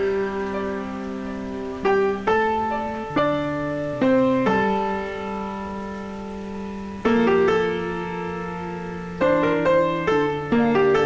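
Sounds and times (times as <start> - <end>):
piano notes and chords: 0.0 - 11.0.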